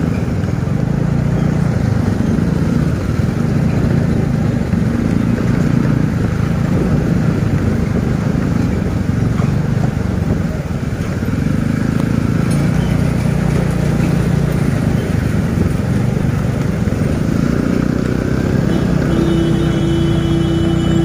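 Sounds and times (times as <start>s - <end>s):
motorcycle engine running: 0.0s - 21.0s
road rumble: 0.0s - 21.0s.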